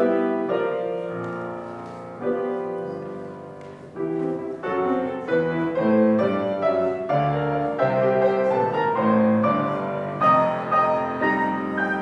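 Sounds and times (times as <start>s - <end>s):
slow piano-like keyboard chords: 0.0s - 12.0s.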